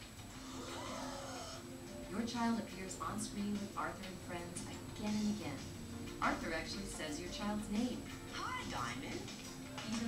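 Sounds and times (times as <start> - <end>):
commercial music from television: 0.0 - 10.0.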